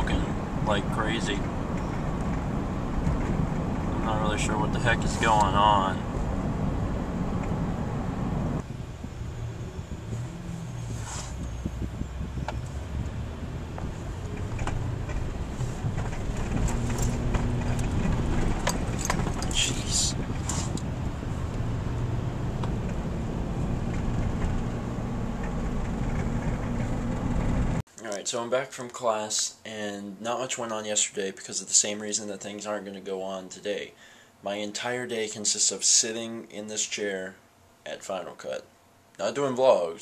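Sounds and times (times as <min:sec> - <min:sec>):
car engine and tyres droning: 0:00.0 - 0:27.8
light clicks and rattles: 0:13.8 - 0:20.9.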